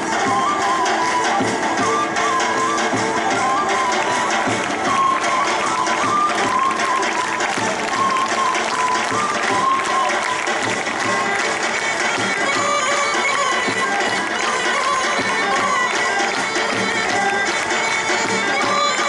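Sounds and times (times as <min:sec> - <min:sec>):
wind instrument melody: 0:00.0 - 0:19.0.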